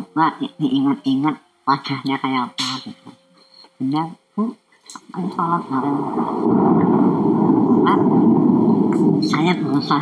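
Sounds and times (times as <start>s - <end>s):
loud steady rumbling: 5.2s - 10.0s.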